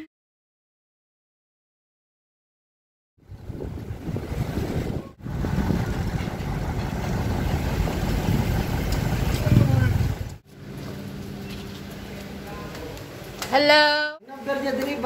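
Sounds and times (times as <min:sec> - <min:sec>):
truck passing alongside: 0:03.2 - 0:13.4
vehicle engine noise: 0:03.2 - 0:13.5
road traffic: 0:03.2 - 0:15.0.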